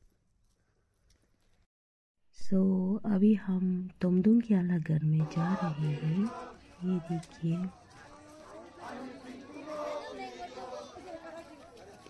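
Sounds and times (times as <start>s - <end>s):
crowd chatter: 5.2s - 12.0s.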